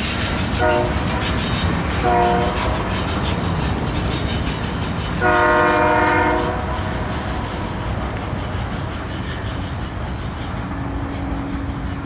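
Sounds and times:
train rumbling: 0.0 - 12.0
locomotive air horn blast: 0.5 - 1.4, 2.0 - 2.8, 5.2 - 7.0.

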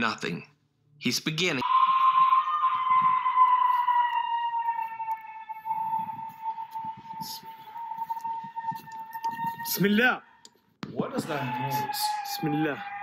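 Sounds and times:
high-pitched wailing cry: 1.6 - 10.5, 11.2 - 13.0.

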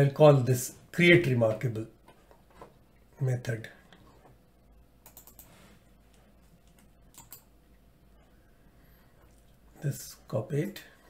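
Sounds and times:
computer keyboard and mouse clicks: 5.0 - 5.6, 6.6 - 7.5.

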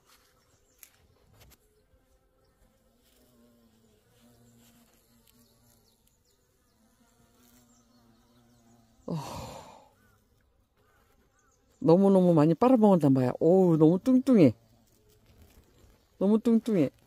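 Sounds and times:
bumblebees buzzing: 0.0 - 17.0
person saying oh: 9.1 - 9.9.

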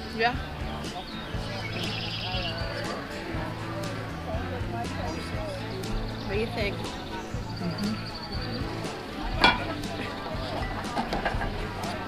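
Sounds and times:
glasses clinking in metal holder: 9.4 - 9.7.

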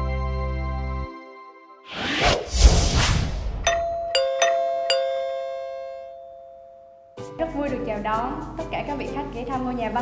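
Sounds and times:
background music: 0.0 - 2.1, 7.2 - 10.0
bright bell-like chime: 3.7 - 7.2.

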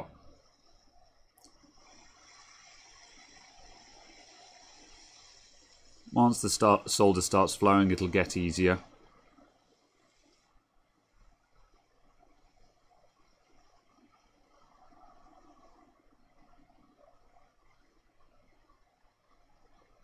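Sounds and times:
faint uneven hiss: 0.0 - 20.0.

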